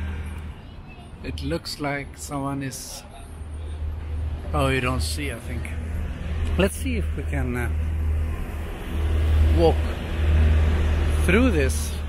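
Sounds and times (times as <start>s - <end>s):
road traffic rumble: 0.0s - 12.0s
car passing by: 5.0s - 12.0s.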